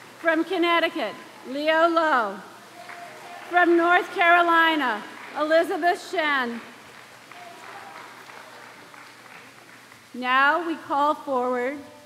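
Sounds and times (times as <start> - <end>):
audience applauding: 0.0 - 1.5, 2.6 - 10.1.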